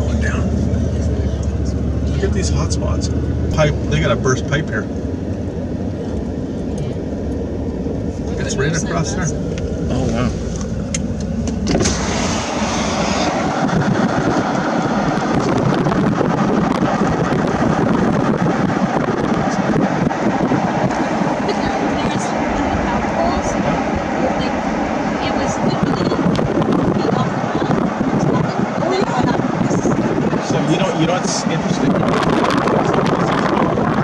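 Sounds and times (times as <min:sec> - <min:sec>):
road noise: 0:00.0 - 0:34.0
wind rushing through car window: 0:00.0 - 0:34.0.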